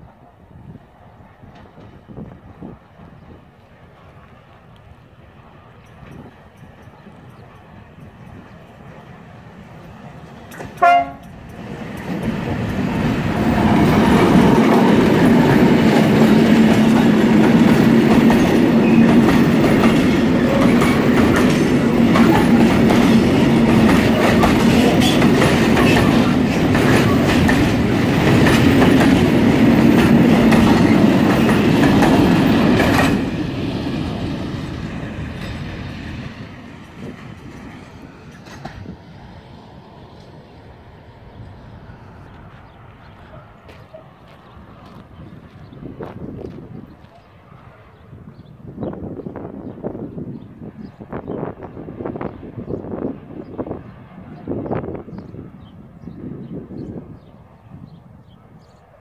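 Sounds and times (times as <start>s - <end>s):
train rumbling over rails: 0.0s - 58.9s
train horn blast: 10.8s - 11.4s.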